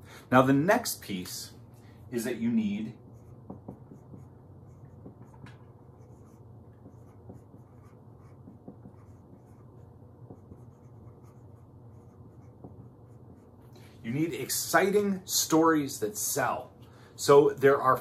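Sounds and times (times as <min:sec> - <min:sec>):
marker writing on whiteboard: 0:02.5 - 0:14.6.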